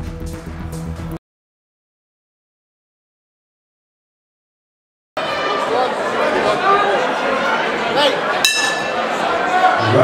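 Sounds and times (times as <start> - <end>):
crowd chattering and shouting: 5.2 - 10.0
sharp metallic bell ring: 8.5 - 9.0.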